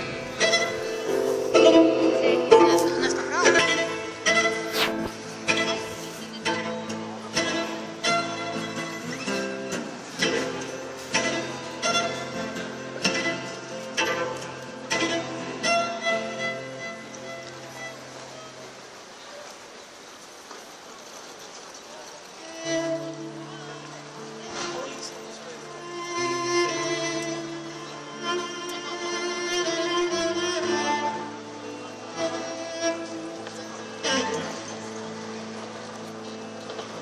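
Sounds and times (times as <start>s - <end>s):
solo cello: 0.0s - 19.0s, 22.3s - 37.0s.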